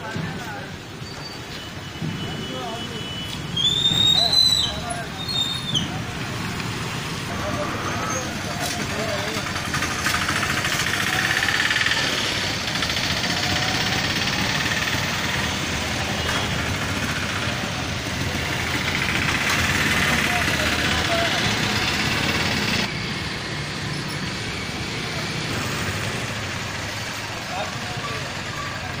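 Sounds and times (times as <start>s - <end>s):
people talking: 0.0s - 0.9s, 2.0s - 22.9s, 25.0s - 29.0s
street traffic noise: 0.0s - 29.0s
motorcycle engines passing: 2.5s - 29.0s.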